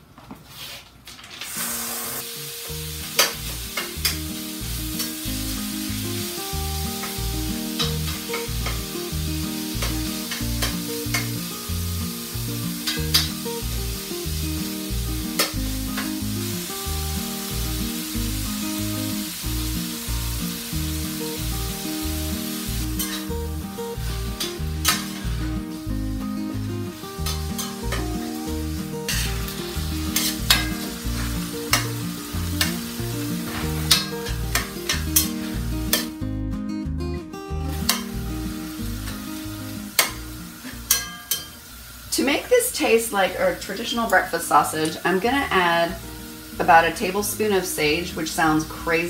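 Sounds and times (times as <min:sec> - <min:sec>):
meat sizzling in a skillet: 0:01.5 - 0:36.2, 0:37.6 - 0:49.0
background music: 0:02.2 - 0:41.2
metal spatula scraping pan: 0:22.9 - 0:23.4, 0:29.0 - 0:29.5, 0:30.1 - 0:32.0, 0:33.4 - 0:36.1.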